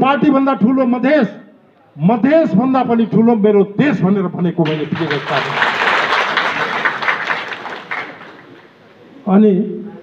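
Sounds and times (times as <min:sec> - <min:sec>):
audience applauding: 0:04.6 - 0:08.7.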